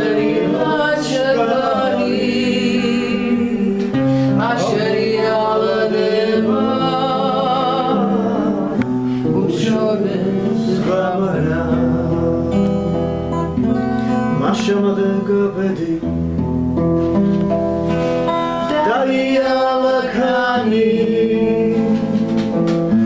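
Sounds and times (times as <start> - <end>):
person singing long notes: 0.0 - 13.0
strummed acoustic guitar: 0.0 - 23.0.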